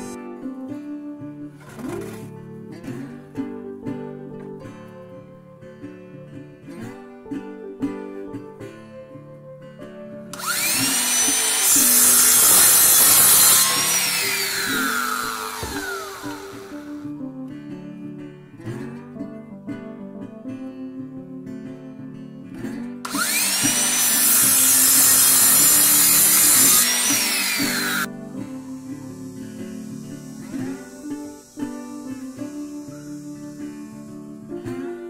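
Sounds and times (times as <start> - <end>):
saw cutting wood: 1.6 - 2.3, 10.3 - 17.0, 23.1 - 34.1
saw blade whine: 10.3 - 17.0, 23.1 - 34.5.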